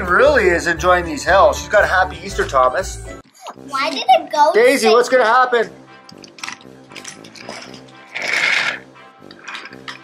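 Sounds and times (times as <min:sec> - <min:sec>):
light background music: 0:00.0 - 0:10.0
wooden toy trains rattling on track: 0:06.9 - 0:10.0.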